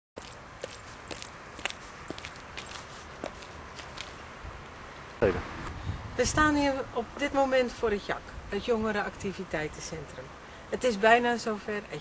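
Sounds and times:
footsteps outdoors: 0:00.2 - 0:05.8.

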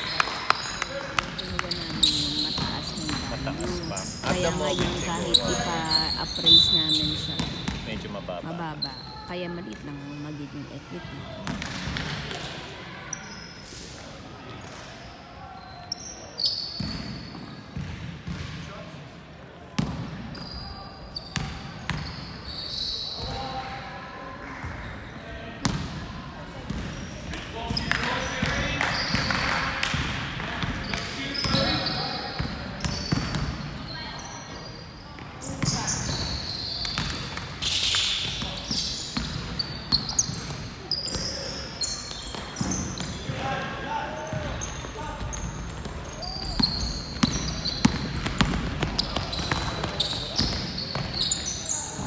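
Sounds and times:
voices echoing in hall: 0:00.0 - 0:16.7, 0:22.6 - 0:52.0
sneakers squeaking: 0:00.0 - 0:18.6, 0:19.8 - 0:23.7, 0:26.6 - 0:52.0.

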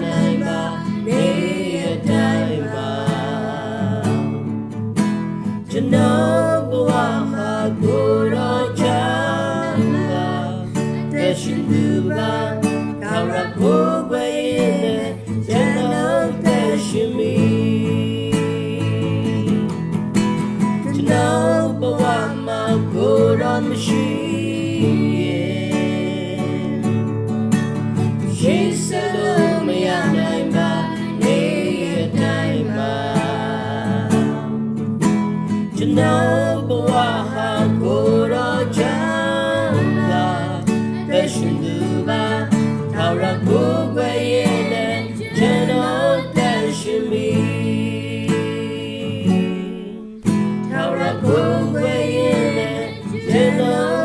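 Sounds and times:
man and woman singing together: 0:00.0 - 0:04.5, 0:05.4 - 0:20.0, 0:20.6 - 0:27.1, 0:28.2 - 0:34.8, 0:35.5 - 0:54.0
strummed acoustic guitar: 0:00.0 - 0:54.0.

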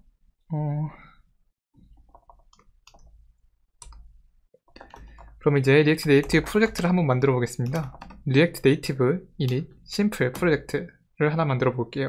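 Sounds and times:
computer keyboard clicks: 0:02.0 - 0:03.1, 0:03.8 - 0:04.0, 0:04.7 - 0:05.4, 0:07.6 - 0:08.2.

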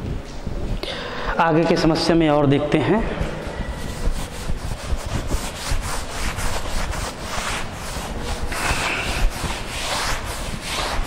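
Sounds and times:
duster wiping chalk blackboard: 0:03.6 - 0:11.0.

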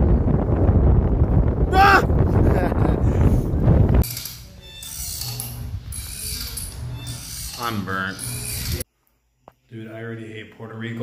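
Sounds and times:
wind on microphone: 0:00.0 - 0:04.0
hammock creaking on ropes: 0:04.0 - 0:08.9.

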